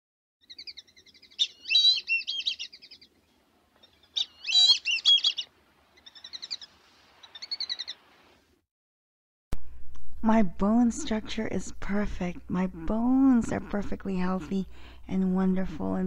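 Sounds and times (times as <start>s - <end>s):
songbird trilling: 0.4s - 3.1s, 3.8s - 8.0s.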